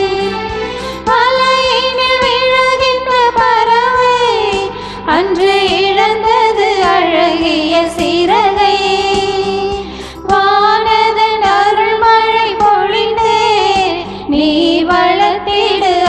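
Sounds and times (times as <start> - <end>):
electronic keyboard sustained notes: 0.0 - 14.7
women singing a hymn: 0.0 - 16.0.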